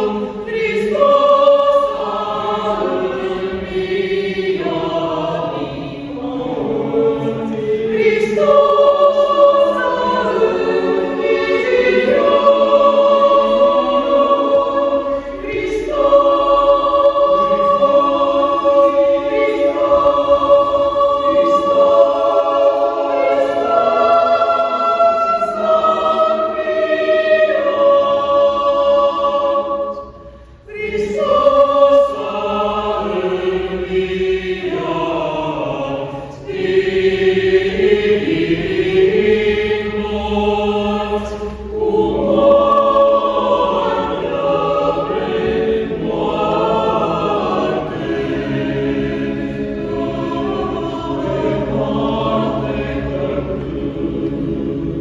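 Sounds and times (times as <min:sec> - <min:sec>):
mixed choir singing unaccompanied: 0:00.0 - 0:55.0.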